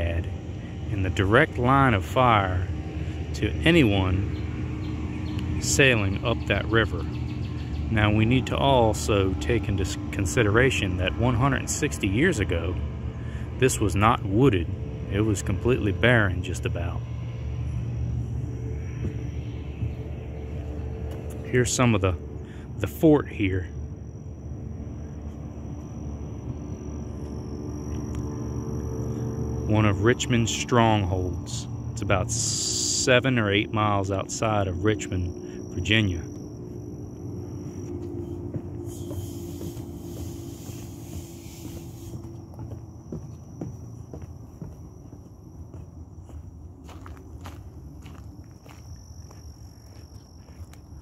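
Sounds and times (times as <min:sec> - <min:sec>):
high insect tone: 0:00.0 - 0:51.0
low rumble with faint hum: 0:00.0 - 0:51.0
footsteps on gravel: 0:18.8 - 0:21.5, 0:36.4 - 0:51.0
thin steady high tone: 0:22.8 - 0:44.8.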